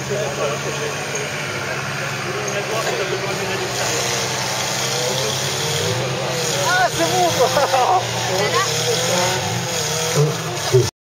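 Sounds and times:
engine running at low revs: 0:00.0 - 0:10.9
spectators' voices: 0:00.0 - 0:10.9.

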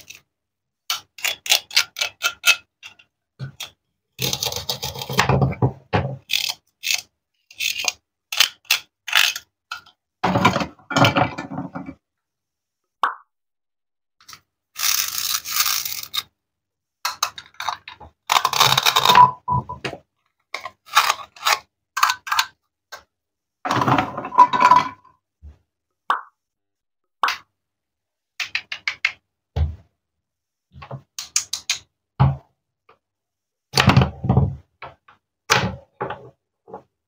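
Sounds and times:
plastic toy pieces clicking: 0:14.2 - 0:16.2.

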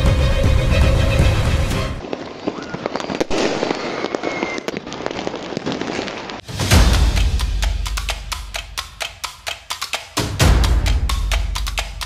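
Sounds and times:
fireworks popping and crackling: 0:02.0 - 0:06.7.

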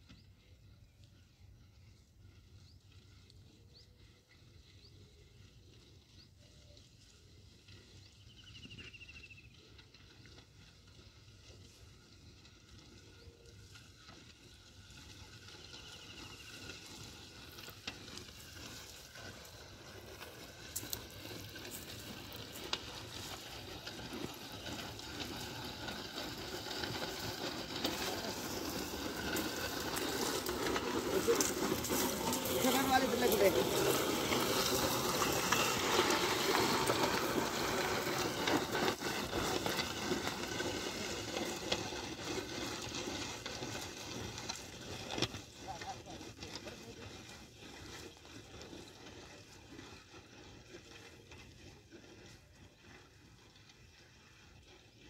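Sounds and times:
dry grass rustling and crackling: 0:05.0 - 0:52.4.

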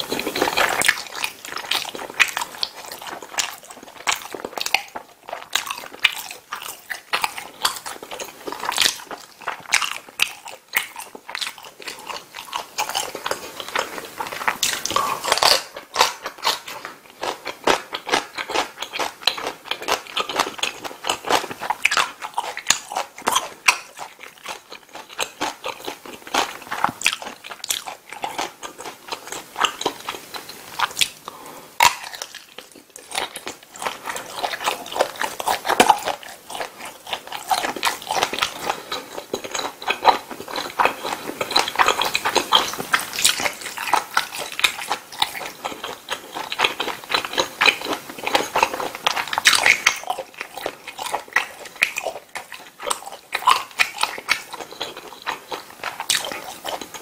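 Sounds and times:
chewing and wet mouth clicks: 0:00.0 - 0:57.0.

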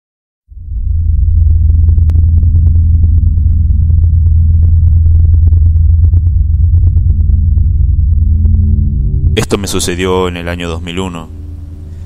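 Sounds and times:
deep rumbling drone: 0:00.5 - 0:12.0.

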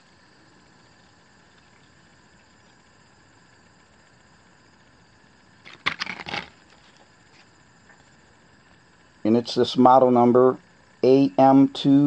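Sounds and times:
faint room hiss: 0:00.0 - 0:12.0
plastic blister pack crackling: 0:05.6 - 0:06.7.

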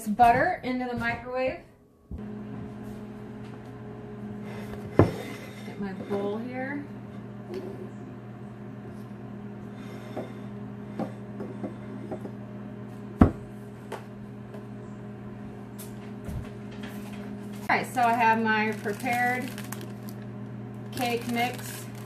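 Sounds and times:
microwave oven humming: 0:00.1 - 0:22.0.

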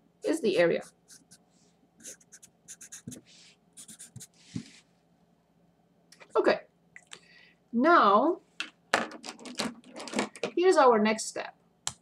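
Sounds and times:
marker scratching on paper: 0:00.7 - 0:01.4, 0:02.0 - 0:04.4.

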